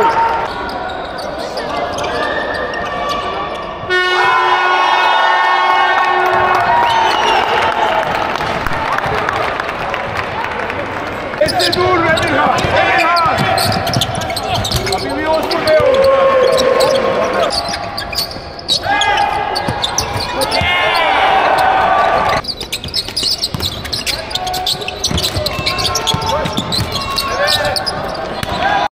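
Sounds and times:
busy arena background: 0:00.0 - 0:28.9
players and coaches shouting: 0:03.9 - 0:09.5, 0:11.4 - 0:17.9, 0:18.7 - 0:22.4, 0:24.2 - 0:28.9
basketball bouncing on court: 0:11.4 - 0:16.1, 0:19.6 - 0:20.9, 0:22.3 - 0:28.7.

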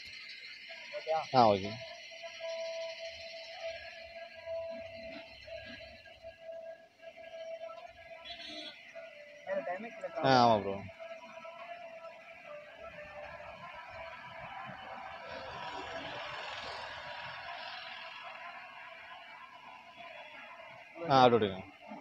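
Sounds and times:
faint steady tones: 0:00.0 - 0:22.0
roadside street noise: 0:00.0 - 0:22.0.

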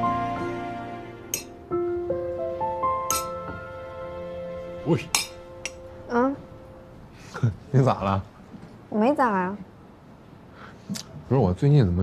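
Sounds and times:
soft background music: 0:00.0 - 0:08.3
sharp clink: 0:01.3 - 0:01.6, 0:03.1 - 0:03.4.

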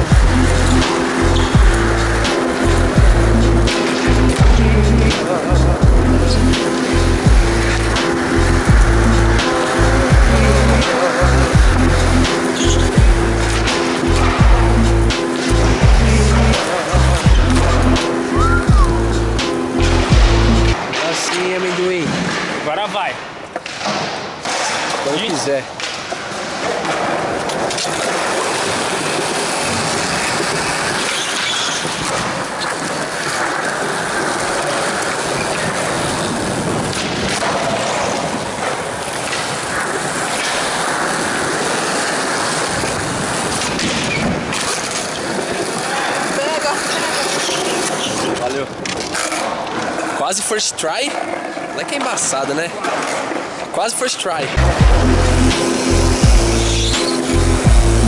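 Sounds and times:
skateboard clacking: 0:00.0 - 0:57.5
skateboard wheels rolling on concrete: 0:00.0 - 0:58.0.

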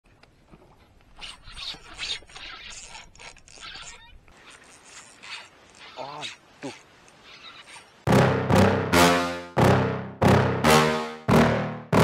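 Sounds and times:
fishing reel handling noise: 0:01.1 - 0:06.4.

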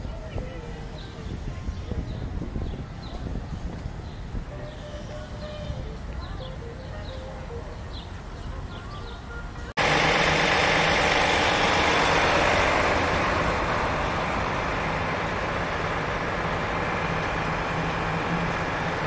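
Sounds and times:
large vehicle engine droning: 0:07.4 - 0:19.0.

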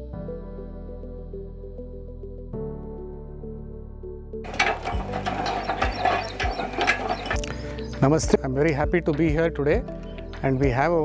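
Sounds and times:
hand winder clicking and rattling: 0:04.5 - 0:08.0
winder knocking: 0:04.5 - 0:08.0.

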